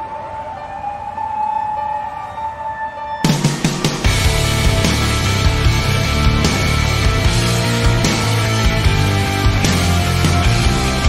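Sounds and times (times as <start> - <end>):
high wavering siren-like tone: 0.0 - 4.1.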